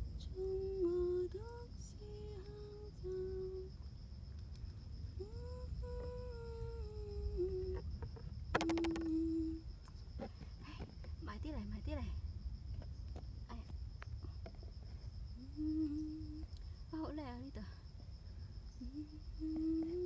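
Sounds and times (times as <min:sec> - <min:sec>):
person humming a slow tune: 0:00.2 - 0:03.7, 0:05.2 - 0:09.7, 0:15.4 - 0:16.6, 0:18.8 - 0:20.0
faint high-pitched drone: 0:05.1 - 0:09.7, 0:15.4 - 0:17.8
sharp click: 0:08.6 - 0:09.2.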